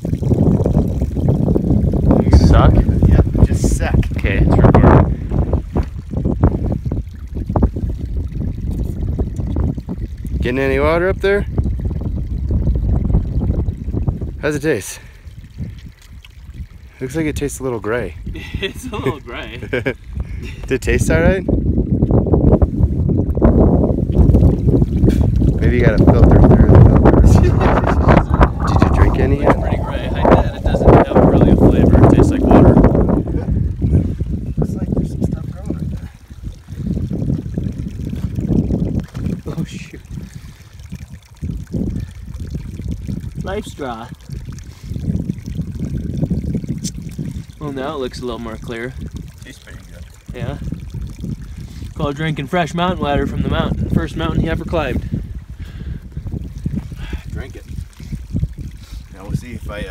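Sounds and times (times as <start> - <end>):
low uneven rumble: 0.0 - 59.9
stream trickling among rocks: 0.0 - 59.9
wind buffeting microphone: 0.0 - 59.9
muffled voices: 27.5 - 31.9.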